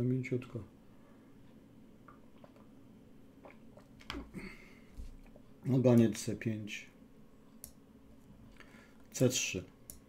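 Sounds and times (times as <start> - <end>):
faint low hum: 0.0 - 10.0
computer mouse clicks: 7.6 - 7.8.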